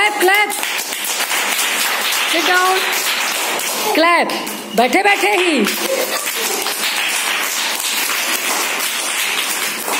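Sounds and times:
children clapping hands: 0:00.0 - 0:09.9.

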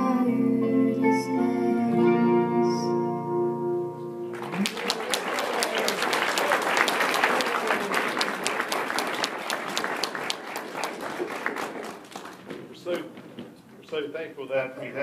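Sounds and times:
guitar: 0:00.0 - 0:05.2
crowd applauding: 0:04.3 - 0:12.8.

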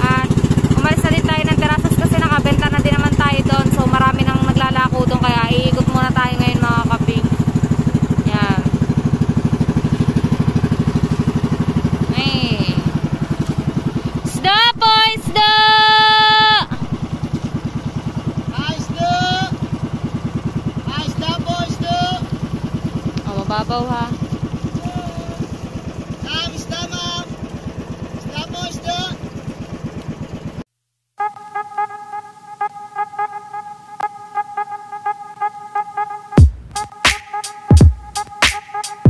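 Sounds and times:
voices: 0:00.0 - 0:07.4, 0:08.2 - 0:08.8, 0:12.0 - 0:17.0, 0:18.4 - 0:19.7, 0:20.8 - 0:22.5, 0:23.2 - 0:27.4, 0:28.2 - 0:29.3
music with hum: 0:00.0 - 0:29.2, 0:31.2 - 0:39.0
boat engine puttering: 0:00.0 - 0:30.6
loud horn-like tone: 0:31.2 - 0:39.0.

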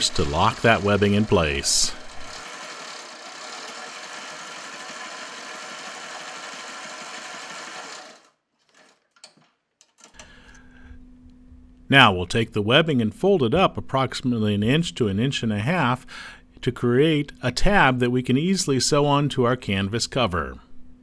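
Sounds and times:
sewing machine running: 0:00.0 - 0:10.2.

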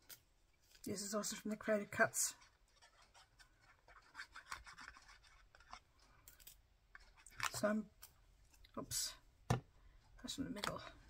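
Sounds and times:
glue bottle tip scratching paper: 0:02.3 - 0:05.8.

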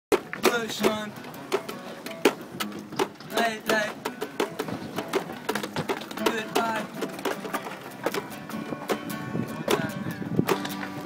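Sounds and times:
acoustic guitar strumming: 0:00.1 - 0:11.0.

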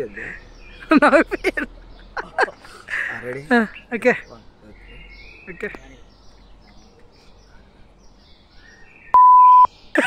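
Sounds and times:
censor bleep: 0:09.1 - 0:09.7.

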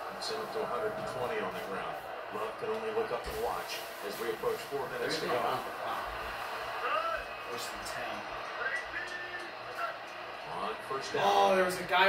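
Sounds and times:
broadcast background noise: 0:00.0 - 0:12.0.

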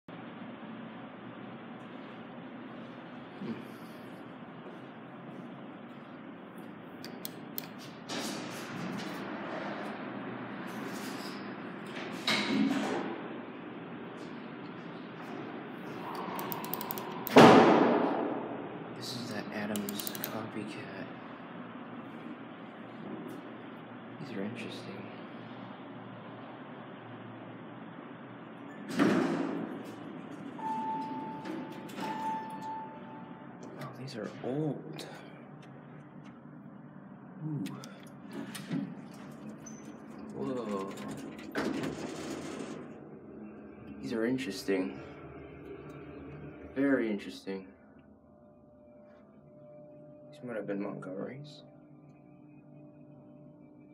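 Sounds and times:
low steady elevator hum: 0:00.1 - 0:53.9
elevator doors slamming shut: 0:16.1 - 0:18.8, 0:28.7 - 0:33.1, 0:40.4 - 0:43.2.

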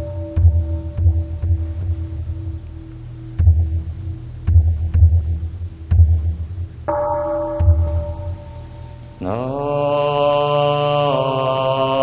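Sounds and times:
large drum strikes: 0:04.5 - 0:09.4
ringing bell tone: 0:06.9 - 0:09.7.

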